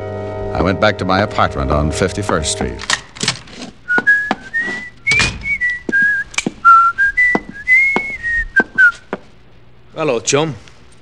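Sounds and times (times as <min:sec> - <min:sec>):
man whistling a tune: 0:03.9 - 0:09.1.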